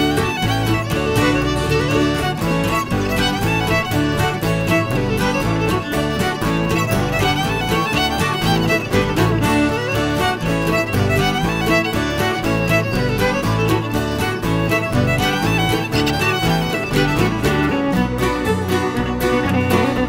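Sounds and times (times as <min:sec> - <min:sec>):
acoustic guitars: 0:00.0 - 0:20.0
fiddle: 0:00.0 - 0:20.0.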